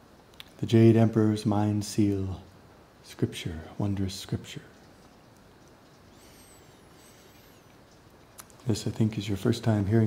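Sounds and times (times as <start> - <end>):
high-pitched bird chirps: 5.1 - 8.4.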